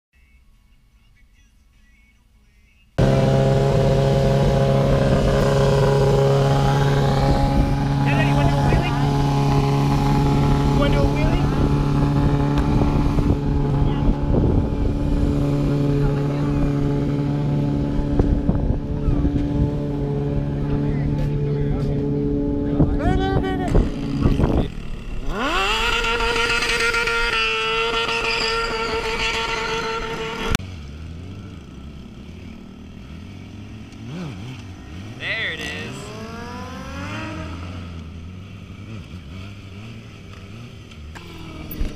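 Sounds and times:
motorcycle engines revving: 3.0 - 41.9.

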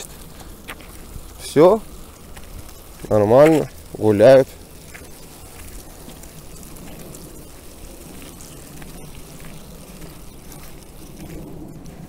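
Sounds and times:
footsteps on dirt path: 0.0 - 12.0
wind rumble on microphone: 0.0 - 12.0.

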